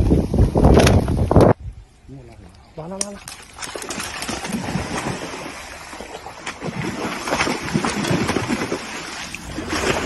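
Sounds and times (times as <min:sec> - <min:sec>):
water splashing and churning: 0:03.0 - 0:10.0.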